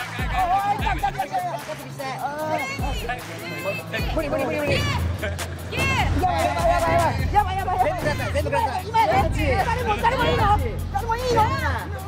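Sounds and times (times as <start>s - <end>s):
crowd babble: 0.0s - 12.0s
excited voices talking: 0.0s - 12.0s.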